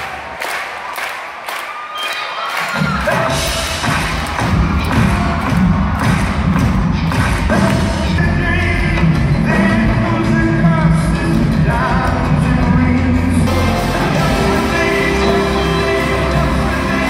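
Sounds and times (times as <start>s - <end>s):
steady drum beat: 3.0s - 17.0s
person singing: 7.5s - 17.0s
live rock band playing: 13.3s - 17.0s.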